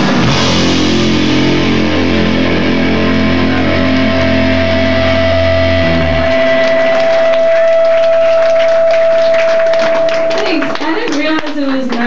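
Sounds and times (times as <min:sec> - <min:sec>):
electric guitar and bass chord: 0:00.0 - 0:10.8
high tone from guitar amp: 0:00.0 - 0:10.8
people clapping: 0:02.2 - 0:12.0.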